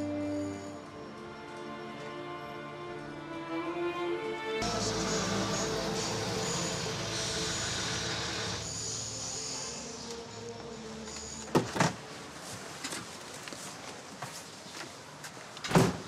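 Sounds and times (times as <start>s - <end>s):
street and car noise: 0.0s - 16.0s.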